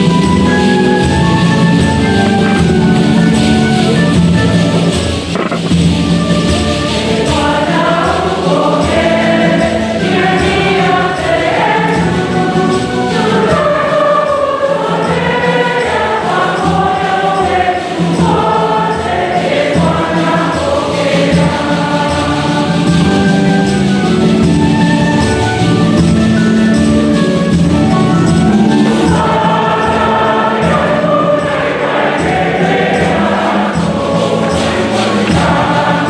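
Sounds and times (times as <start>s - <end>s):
choir singing a hymn: 0.0s - 36.0s
instrumental accompaniment: 0.0s - 36.0s.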